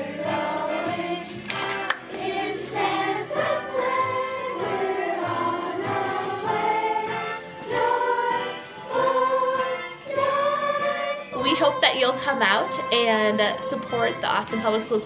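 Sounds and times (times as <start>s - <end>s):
children singing in a group: 0.0s - 11.3s.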